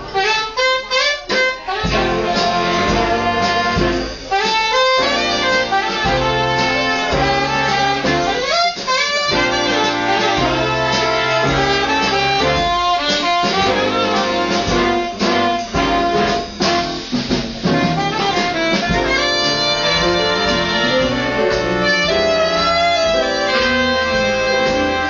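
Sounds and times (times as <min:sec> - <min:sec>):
jazz big band playing: 0:00.0 - 0:25.0.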